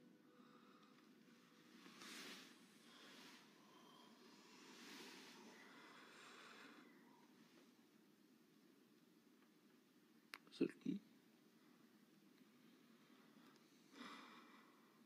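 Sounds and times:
soft breaths: 0:00.0 - 0:08.1, 0:11.4 - 0:15.0.

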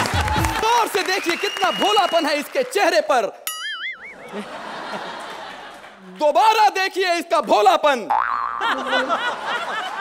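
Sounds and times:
cartoon boing: 0:03.5 - 0:04.2, 0:08.1 - 0:08.7.

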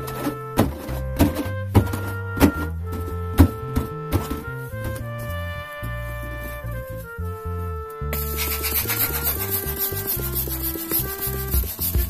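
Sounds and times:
background music with steady beat: 0:00.0 - 0:12.0
balloons rubbing together: 0:08.2 - 0:12.0.

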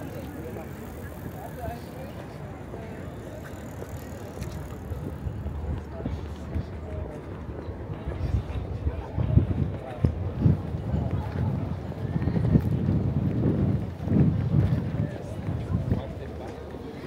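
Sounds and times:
faint voices of passers-by: 0:00.0 - 0:17.0.

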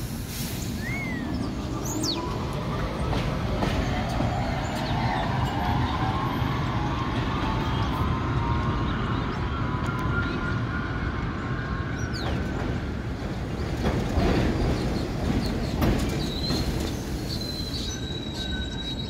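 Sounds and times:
train arriving at station: 0:00.0 - 0:19.0
train wheels rumbling on rails: 0:00.0 - 0:19.0.

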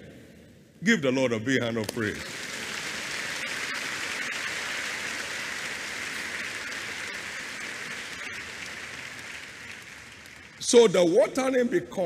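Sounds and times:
crowd clapping: 0:01.8 - 0:11.2.

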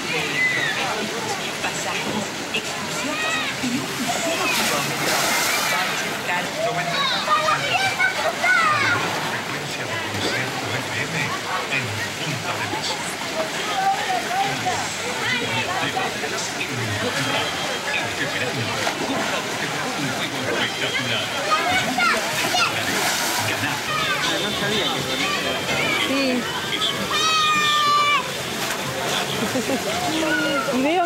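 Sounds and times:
water sloshing: 0:00.0 - 0:06.6, 0:07.2 - 0:31.0
children and adults talking: 0:00.0 - 0:31.0
splash into pool: 0:03.9 - 0:06.2, 0:21.7 - 0:24.3.

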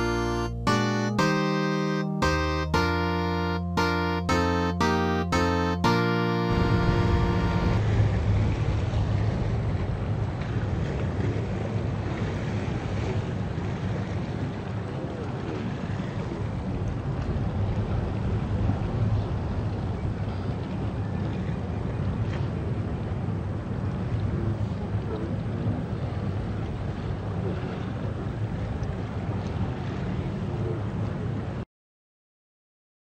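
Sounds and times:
piano piece: 0:00.0 - 0:07.8
boat engine drone: 0:00.0 - 0:31.5
wind and water rushing: 0:06.5 - 0:31.6.

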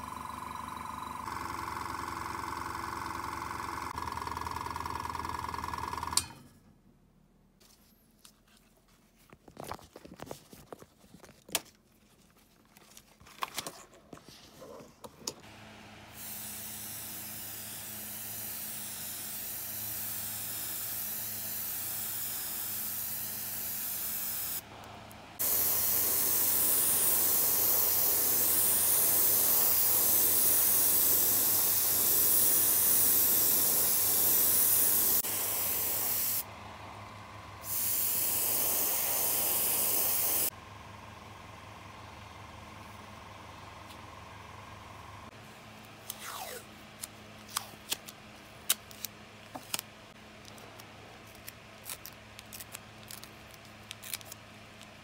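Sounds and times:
airbrush spraying paint: 0:16.2 - 0:24.6, 0:25.4 - 0:36.4, 0:37.6 - 0:40.5.

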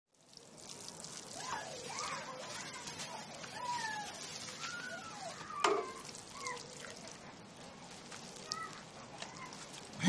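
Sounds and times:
animal cries: 0:01.4 - 0:07.0.

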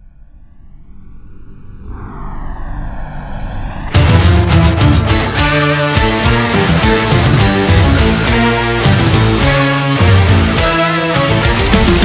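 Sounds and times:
droning tone gliding in pitch: 0:00.0 - 0:06.2
low rumble: 0:00.0 - 0:06.2.

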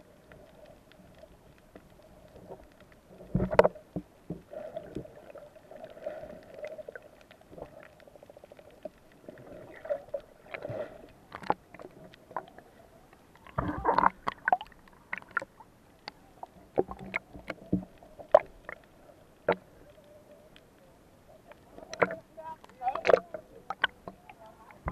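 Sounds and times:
faint steady hum: 0:00.0 - 0:24.9
muffled underwater water movement: 0:00.0 - 0:24.9
underwater clicks and knocks: 0:01.1 - 0:05.0, 0:11.3 - 0:12.6, 0:13.4 - 0:18.8, 0:19.4 - 0:19.7, 0:21.5 - 0:24.9.

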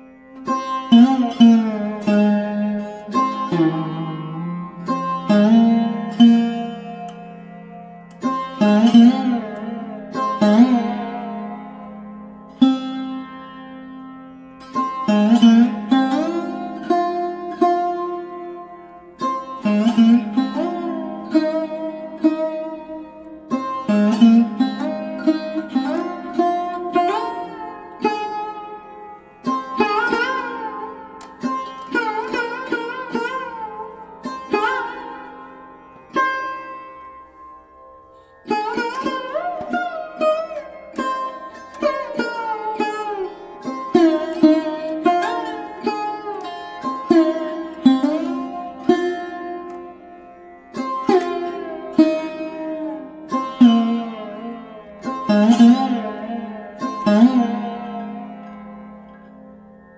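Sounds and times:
plucked string instrument phrases: 0:00.0 - 0:59.9.

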